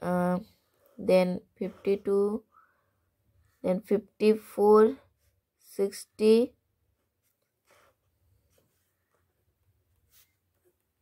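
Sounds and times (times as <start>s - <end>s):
pen scratching on paper: 0.8s - 2.2s, 7.2s - 8.9s.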